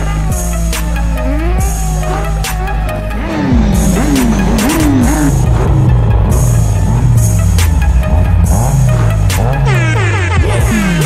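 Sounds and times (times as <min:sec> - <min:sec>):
engine revving: 0:00.0 - 0:11.0
hip-hop beat: 0:00.0 - 0:11.0.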